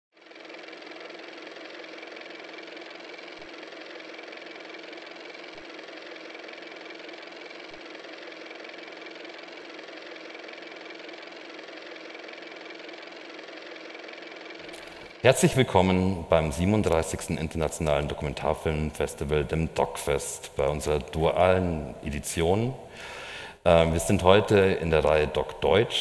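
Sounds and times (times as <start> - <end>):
mechanical whir with hum: 0.2 - 26.0.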